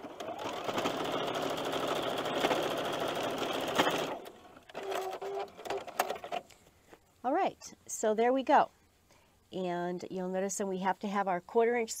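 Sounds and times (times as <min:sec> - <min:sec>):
sewing machine stitching: 0:00.0 - 0:06.4.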